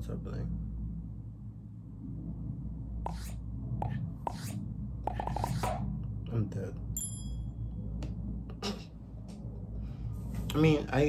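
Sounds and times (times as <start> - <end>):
low hum: 0.0 - 11.0
bright ding: 7.0 - 7.6.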